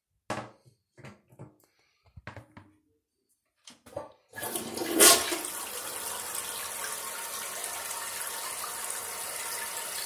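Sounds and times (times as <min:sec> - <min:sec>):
toilet flushing: 0:04.3 - 0:10.0.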